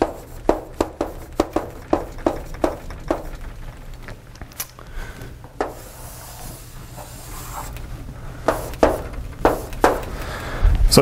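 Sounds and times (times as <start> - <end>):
chalk scraping on chalkboard: 0.0 - 3.4, 5.6 - 7.8, 8.4 - 10.1.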